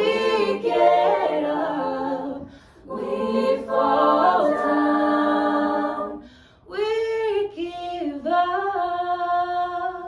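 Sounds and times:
group singing a chord: 0.0s - 6.6s.

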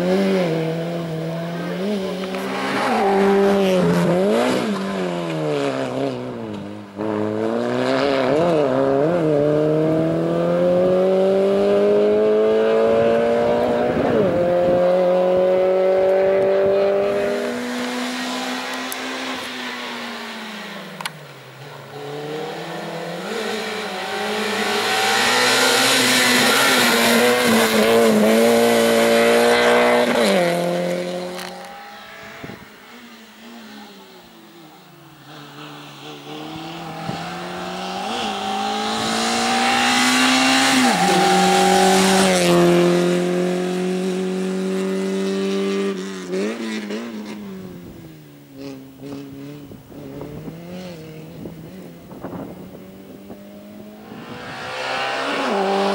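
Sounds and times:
car engine revving hard: 7.0s - 20.6s, 22.0s - 32.6s, 35.3s - 47.7s, 53.1s - 55.9s.

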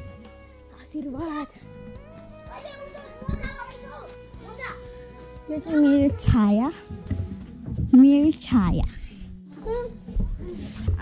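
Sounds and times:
background music: 0.0s - 11.0s
children talking: 2.4s - 6.5s.

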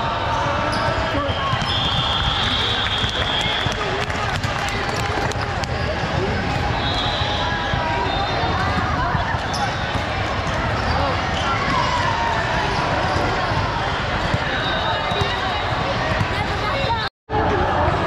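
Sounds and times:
chatter echoing in a hall: 0.0s - 18.0s.

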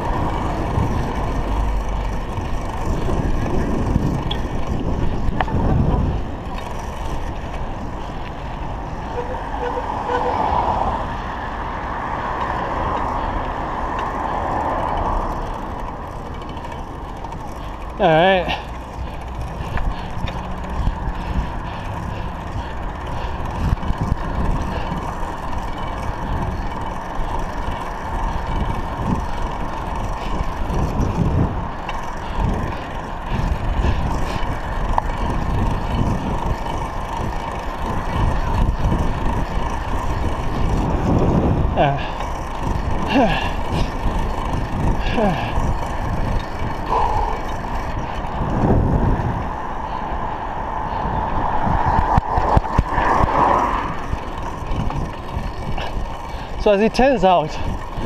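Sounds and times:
wind rumbling on microphone: 0.0s - 58.0s.

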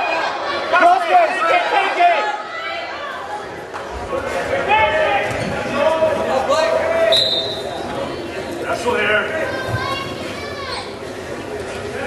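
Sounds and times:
voices shouting in gymnasium: 0.0s - 12.0s.

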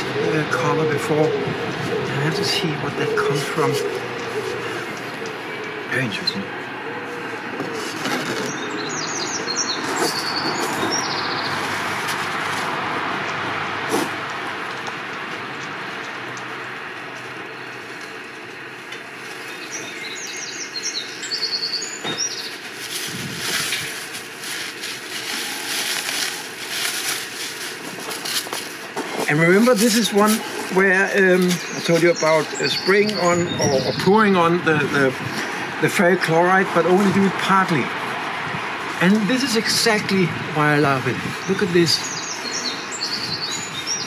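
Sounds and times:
rustling and scraping in ash: 9.8s - 12.9s, 22.1s - 32.7s
small bird chirping: 19.2s - 23.7s, 41.4s - 44.0s.

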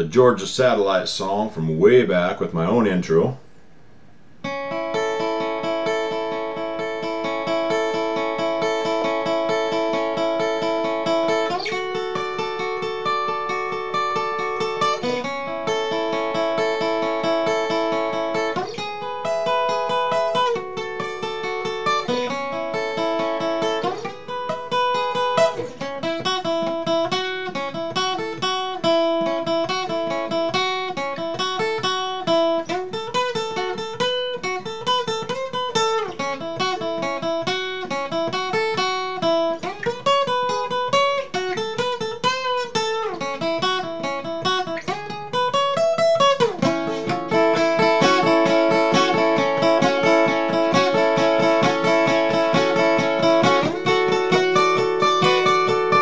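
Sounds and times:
fingerpicked acoustic guitar: 4.4s - 56.0s.

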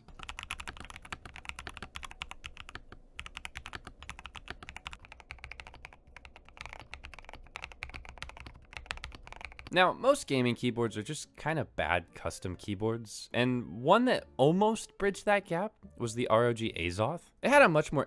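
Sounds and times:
mechanical keyboard typing: 0.0s - 9.7s.

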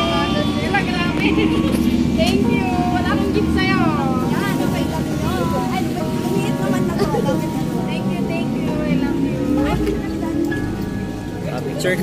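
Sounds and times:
women talking excitedly: 0.0s - 11.4s
low rumble of street traffic: 0.0s - 12.0s.

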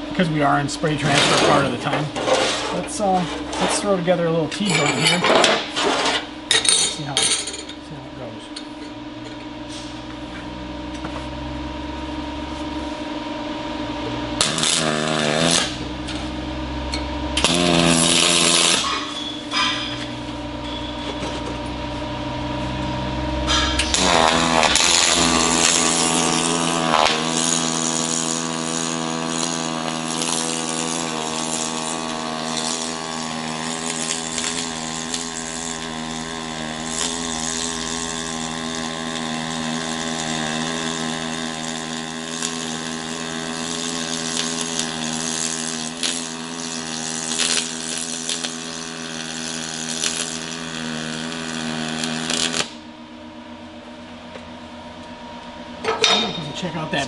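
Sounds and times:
arc welding buzz with crackle: 0.0s - 57.0s.

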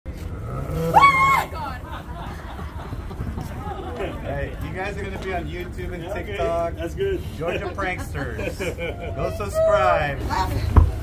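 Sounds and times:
woman screaming: 0.9s - 1.8s.

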